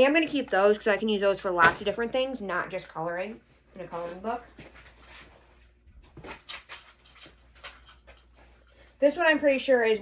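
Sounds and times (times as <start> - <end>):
clothes rustling: 3.1 - 10.0.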